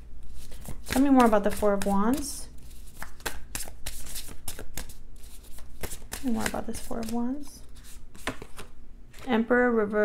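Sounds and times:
cards being shuffled: 0.3 - 9.3.

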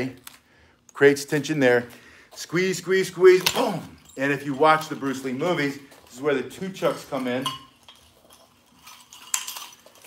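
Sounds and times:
metal chain clinking: 2.3 - 10.0.

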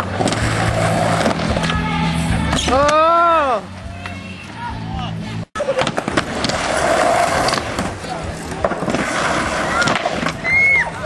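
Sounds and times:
skateboard wheels rumbling: 0.0 - 1.7, 5.6 - 11.0.

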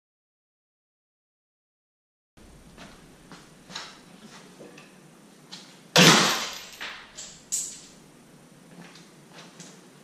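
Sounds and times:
loud metallic clang: 6.0 - 8.0
smaller metal clanks: 6.0 - 8.0.

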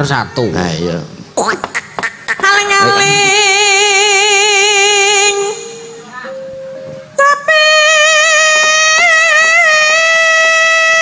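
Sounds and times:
woman singing with vibrato: 1.4 - 6.3, 7.0 - 11.0.

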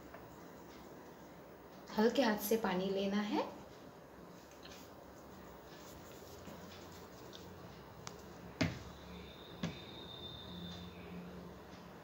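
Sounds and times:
faint high whine: 8.0 - 11.9
sharp knocks: 9.6 - 9.8.

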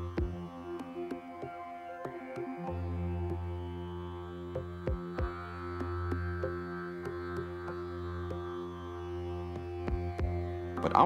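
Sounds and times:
droning chord music: 0.0 - 11.0.

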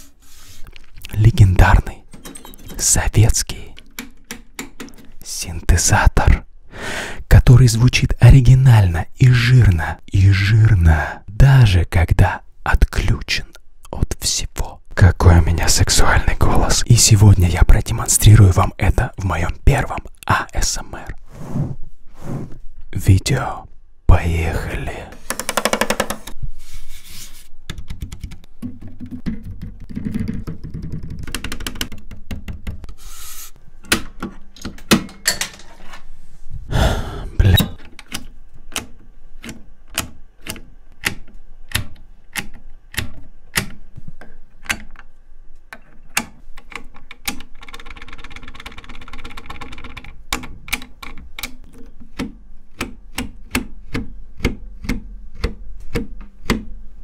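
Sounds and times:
rubbing noise: 0.0 - 0.7, 21.2 - 22.6, 25.2 - 27.5
synthesizer controls clicking: 37.6 - 43.8.

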